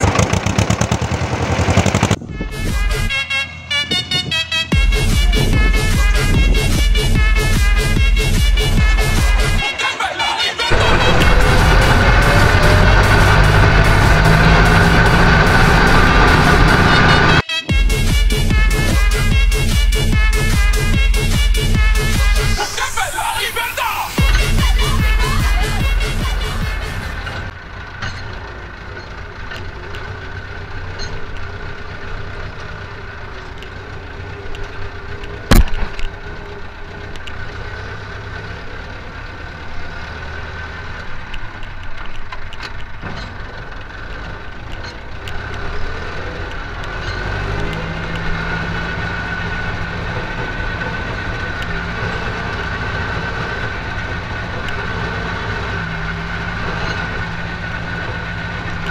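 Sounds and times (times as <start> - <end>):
tractor diesel engine running: 0.0 - 58.9
steady whine: 10.7 - 17.5
sharp knock: 35.5 - 35.9.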